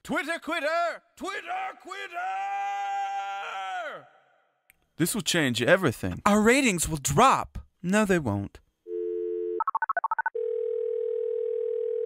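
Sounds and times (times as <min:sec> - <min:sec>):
telephone dial tone: 0:08.9 - 0:12.0.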